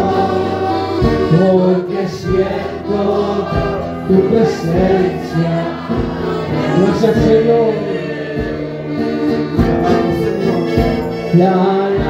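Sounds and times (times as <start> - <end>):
amplified band accompaniment: 0.0 - 12.0
congregation singing worship song: 0.0 - 12.0.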